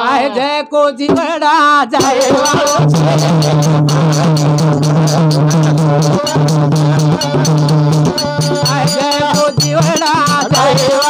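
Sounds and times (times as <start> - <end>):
hand drum beat: 2.0 - 11.0.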